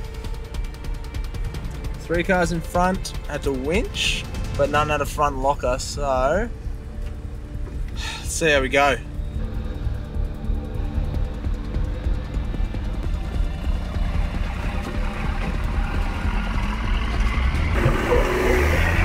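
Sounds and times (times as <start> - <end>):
background music: 0.0 - 19.0
truck engine crawling: 0.0 - 19.0.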